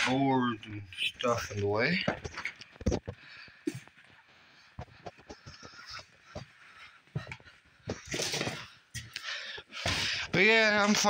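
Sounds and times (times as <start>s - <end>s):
footsteps on cluttered floor: 0.0s - 11.0s.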